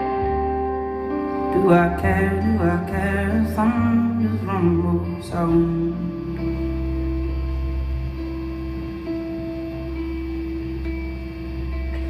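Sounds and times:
slow instrumental band music: 0.0 - 12.0
steady low drone: 0.0 - 12.0.

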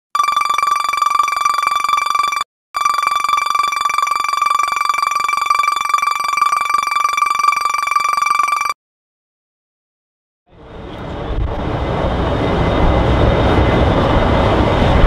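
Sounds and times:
buzzing high electronic tone: 0.2 - 8.8.

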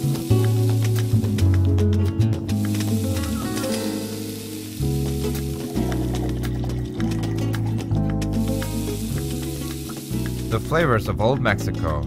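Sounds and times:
mushrooms sizzling in oil: 0.0 - 1.4, 2.6 - 6.1, 8.4 - 10.8
background music: 0.0 - 12.0.

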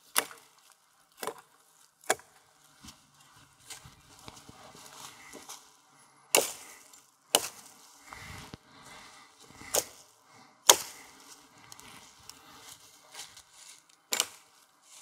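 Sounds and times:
axe chopping branches: 0.0 - 2.4, 6.3 - 7.8, 9.6 - 10.0, 10.6 - 12.0, 14.1 - 14.6.

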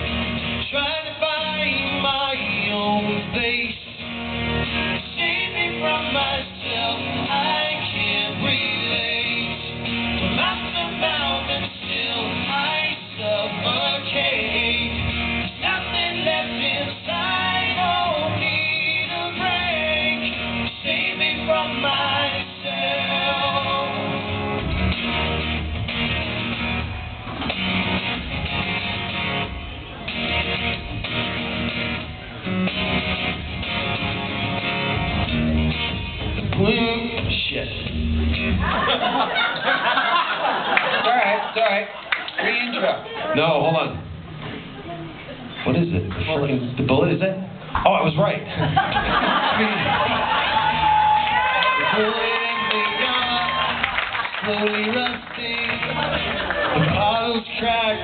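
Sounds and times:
acoustic guitars strummed and picked: 0.0 - 41.0, 48.6 - 58.0.

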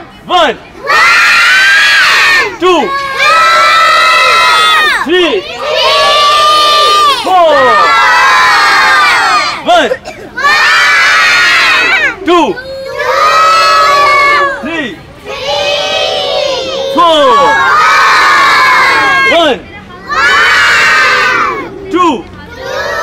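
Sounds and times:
children shouting in chorus: 0.8 - 14.7, 15.3 - 21.8, 22.5 - 23.0.

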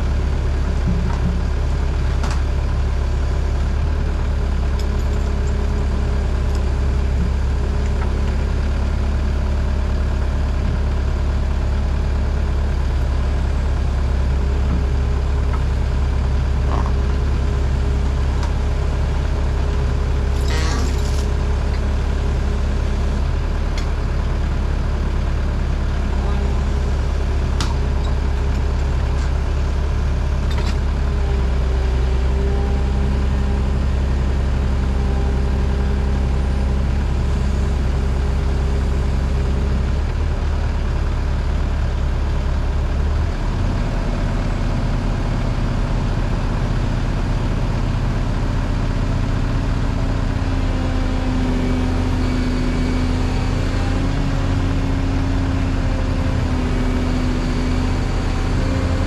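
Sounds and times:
diesel excavator engine running: 0.0 - 59.0.

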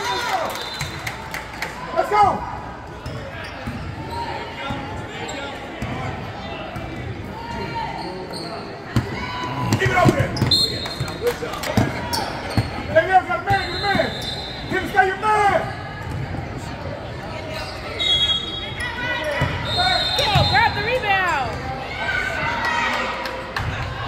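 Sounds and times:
sneakers squealing on floor: 7.4 - 15.0, 17.4 - 21.8.

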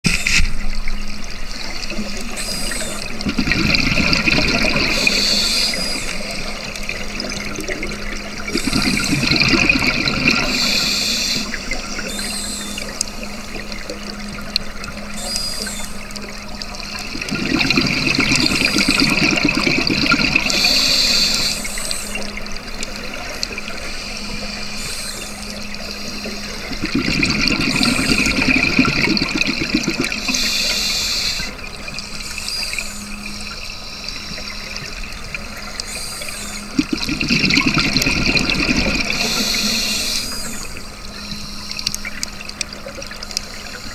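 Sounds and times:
bubbling exhalations: 2.4 - 10.8, 17.1 - 21.3, 26.3 - 30.8, 36.2 - 40.6
diver breathing through regulator: 10.5 - 11.6, 20.4 - 22.1, 30.2 - 31.5.

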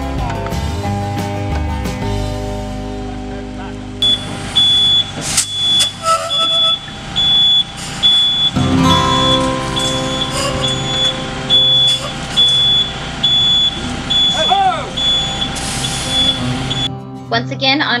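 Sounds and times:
diesel engine running: 2.0 - 16.9
truck warning beeper: 4.0 - 16.9.

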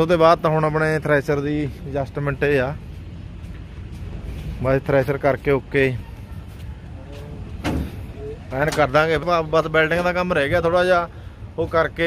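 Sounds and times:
man speaking: 4.6 - 6.2, 8.1 - 12.0.

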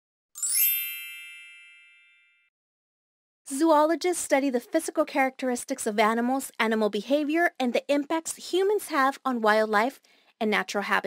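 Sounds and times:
bright logo chime: 0.4 - 2.5.

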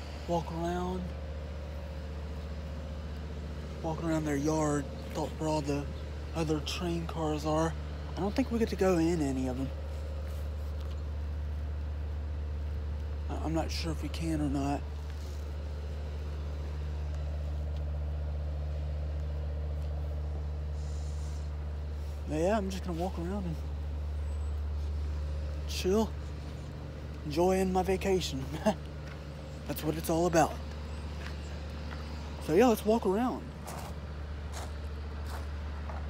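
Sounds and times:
large engine idling: 0.0 - 36.0
steady low hum: 0.0 - 36.0.

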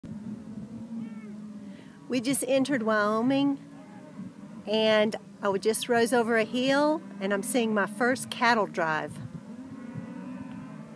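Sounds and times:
cattle lowing: 0.0 - 10.9.

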